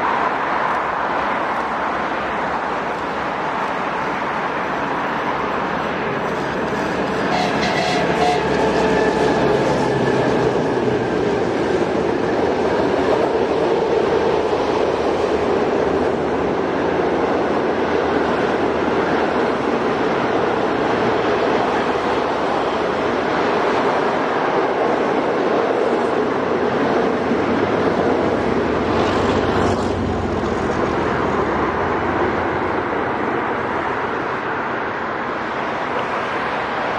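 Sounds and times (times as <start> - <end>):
diesel locomotive engines: 0.0 - 36.9
train wheels on rails: 0.0 - 36.9.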